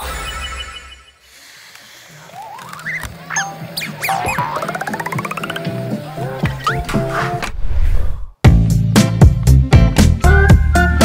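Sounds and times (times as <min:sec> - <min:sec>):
springy cartoon pitch glides: 0:02.4 - 0:06.0
rising run of clicking notes: 0:04.1 - 0:06.0.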